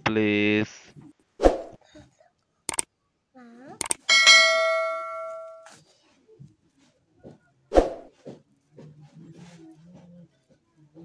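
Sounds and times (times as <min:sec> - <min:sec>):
bright bell ding: 0:04.1 - 0:05.7.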